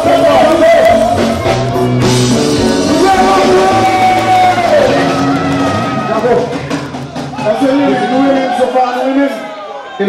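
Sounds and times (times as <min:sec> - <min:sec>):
live band music: 0:00.0 - 0:08.7
singer holding long note: 0:02.6 - 0:06.6.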